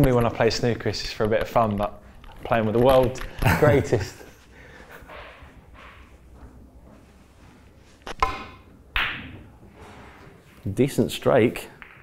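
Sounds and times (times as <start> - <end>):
person laughing: 3.4 - 4.4.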